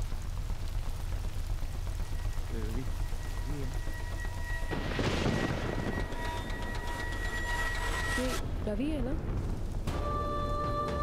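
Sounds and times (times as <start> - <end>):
low rumble: 0.0 - 10.6
steady rain: 0.0 - 11.0
thin high tone: 2.1 - 8.4.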